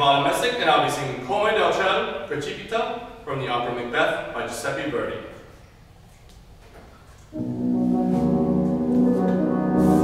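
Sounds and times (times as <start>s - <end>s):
grand piano chords: 7.3s - 10.0s.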